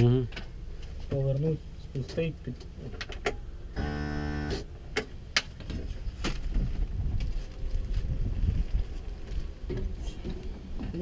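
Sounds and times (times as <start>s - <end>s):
wind noise on microphone: 5.6s - 10.9s.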